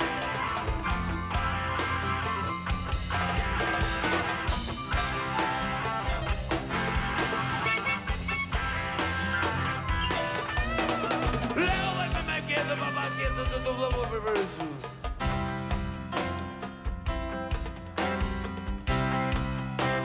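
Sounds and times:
electric guitar: 0.0 - 20.0
live rock band playing: 0.0 - 20.0.

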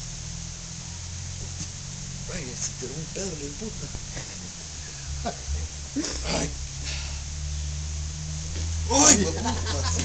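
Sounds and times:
steady low rumble: 0.0 - 10.0
brief hiss: 6.0 - 7.3.

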